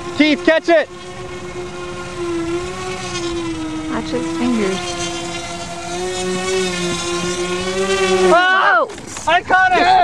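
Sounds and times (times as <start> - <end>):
high whine of model aircraft motors: 0.0 - 10.0.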